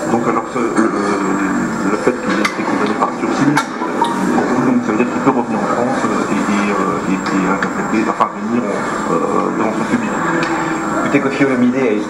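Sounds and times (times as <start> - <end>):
crowd of overlapping voices: 0.0 - 12.0.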